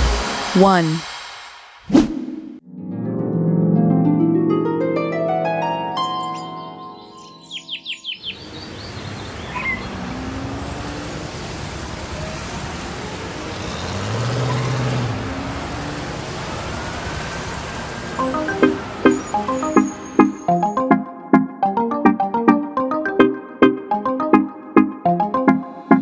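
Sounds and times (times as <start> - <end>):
music with plucked notes: 2.7 - 7.5, 18.2 - 26.0
high chirps: 5.9 - 9.9, 18.2 - 21.0
car engine: 8.4 - 19.2
traffic noise hiss: 8.4 - 20.2.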